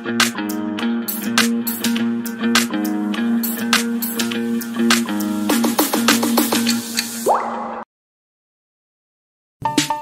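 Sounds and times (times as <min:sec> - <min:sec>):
falling bloop sound effects: 0:07.2 - 0:07.9.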